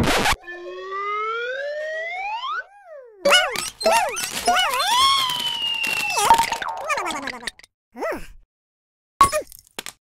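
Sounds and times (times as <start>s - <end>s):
squeaky chirps: 2.6s - 6.6s.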